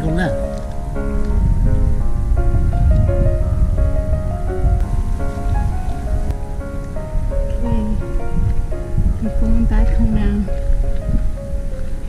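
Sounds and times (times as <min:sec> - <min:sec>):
loud low rumbling crackling noise: 0:00.0 - 0:12.0
piano music: 0:00.0 - 0:12.0.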